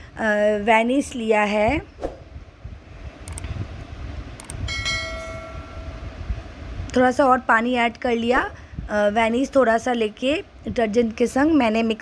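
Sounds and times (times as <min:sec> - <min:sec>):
low rumbling noise: 0:01.6 - 0:09.4
sharp clicks: 0:03.2 - 0:03.5, 0:04.4 - 0:04.6.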